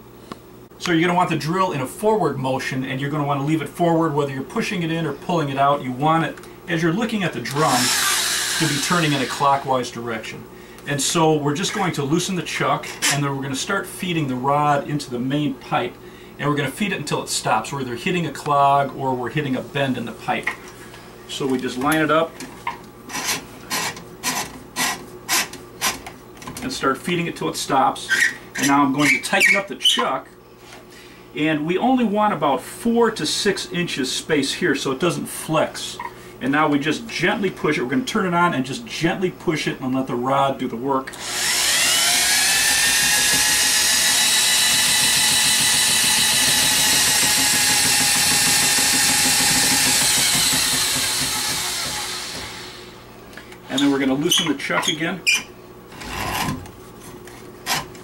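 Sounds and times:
electric drill motor whining: 7.5 - 9.7, 41.1 - 53.0
drain snake cable spinning: 41.4 - 51.9.

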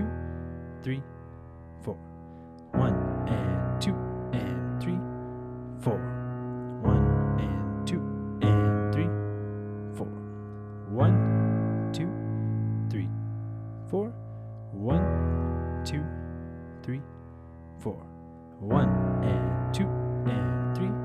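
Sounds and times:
low piano octaves: 0.0 - 21.0.

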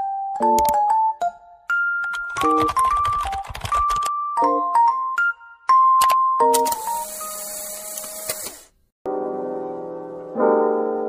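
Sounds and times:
click: 6.0 - 7.0, 7.8 - 8.6.

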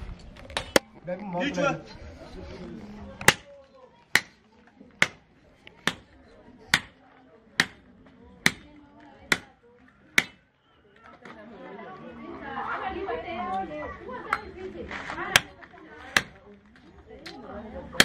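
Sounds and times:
people chattering: 0.0 - 18.0
machete chopping meat: 7.6 - 7.8, 8.4 - 8.7, 10.2 - 10.4.

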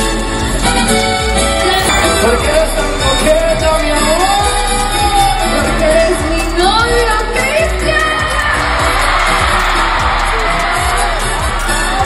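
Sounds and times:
band playing: 0.0 - 12.0
person singing live: 1.6 - 12.0.

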